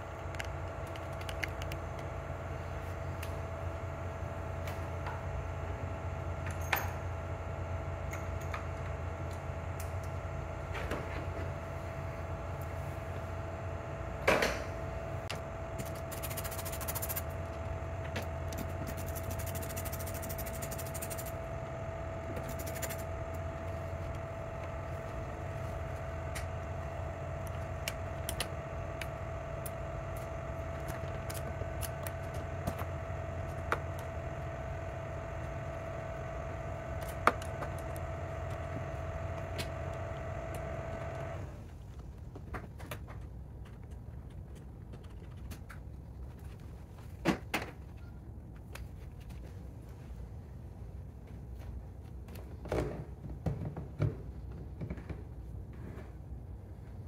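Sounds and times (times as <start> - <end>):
steady hum with faint whine: 0.0 - 57.0.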